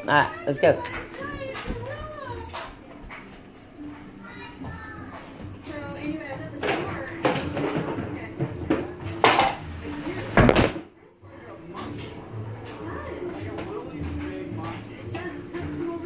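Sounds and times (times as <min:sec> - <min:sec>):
household items knocking and clattering: 0:06.6 - 0:09.6, 0:10.4 - 0:10.9.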